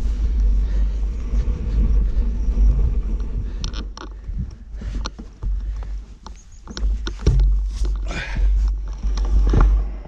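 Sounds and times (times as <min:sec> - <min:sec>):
bike rattling over bumps: 0:00.0 - 0:10.0
wind and vibration rumble: 0:00.0 - 0:10.0.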